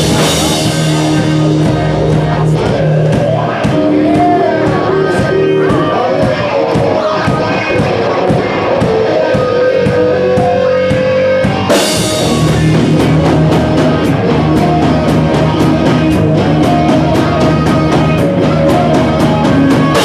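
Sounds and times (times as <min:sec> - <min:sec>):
drum kit with cymbal strikes: 0:00.0 - 0:20.0
electric guitars bending notes: 0:00.0 - 0:20.0.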